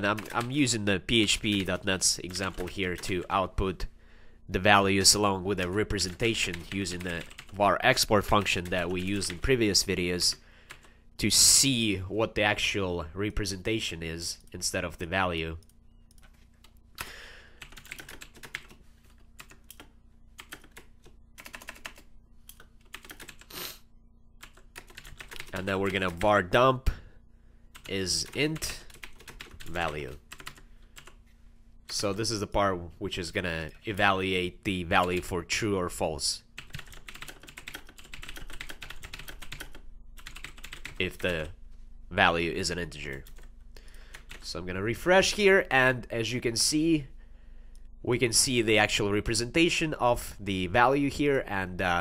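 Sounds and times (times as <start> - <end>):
computer keyboard typing: 0.0 - 3.3, 5.9 - 7.6, 8.2 - 9.6, 15.6 - 23.5, 24.4 - 26.3, 27.8 - 31.2, 36.6 - 41.5, 43.1 - 43.5, 44.1 - 44.4.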